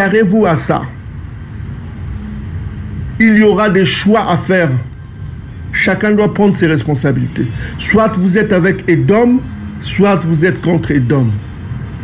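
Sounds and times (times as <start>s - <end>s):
faint hum: 0.0s - 12.0s
low background rumble: 0.0s - 12.0s.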